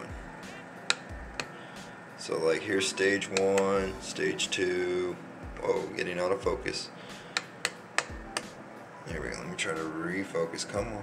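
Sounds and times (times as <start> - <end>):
faint fan running: 0.0 - 11.0.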